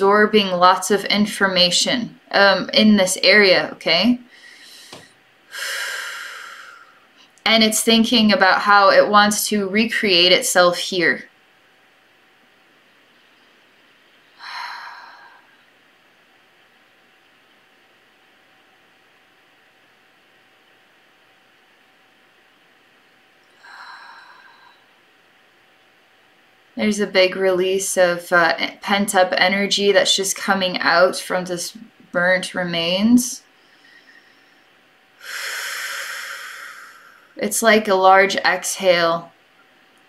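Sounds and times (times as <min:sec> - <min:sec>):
room tone hiss: 0:00.0 - 0:40.0
woman exhaling: 0:04.3 - 0:07.0, 0:14.4 - 0:15.6, 0:23.6 - 0:25.0, 0:35.2 - 0:37.4.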